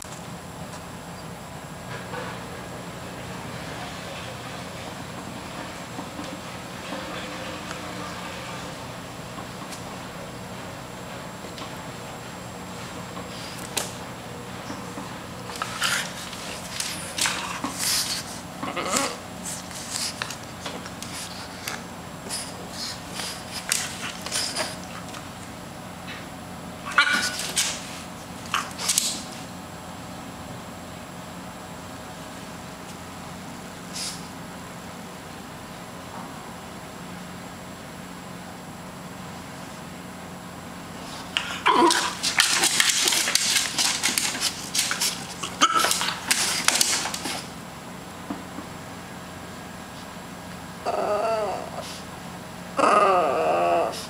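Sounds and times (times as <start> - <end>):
dog claws scratching chair: 14.6 - 25.3, 26.9 - 29.4, 41.2 - 47.5.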